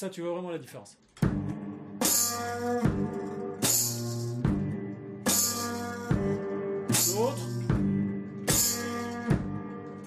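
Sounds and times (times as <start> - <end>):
bass drum thumps: 1.2 - 3.2, 4.4 - 4.8, 6.1 - 6.4, 7.6 - 9.7
electric guitar chords: 1.2 - 10.0.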